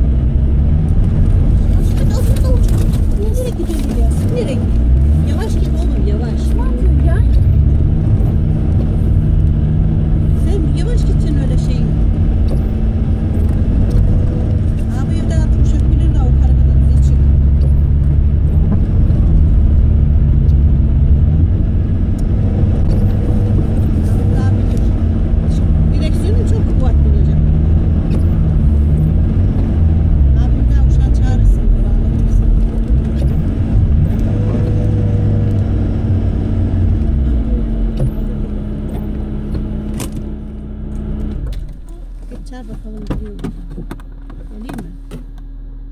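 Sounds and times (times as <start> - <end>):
car engine running: 0.0 - 45.9
steady cabin hum: 0.0 - 45.9.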